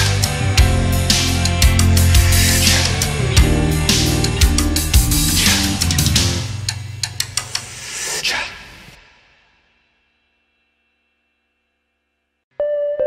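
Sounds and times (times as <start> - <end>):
background music with drums and guitar: 0.0 - 7.6.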